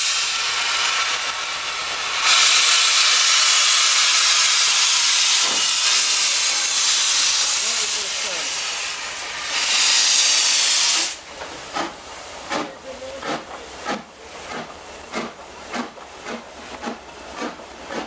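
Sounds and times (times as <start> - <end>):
steam locomotive hissing: 0.0 - 18.0.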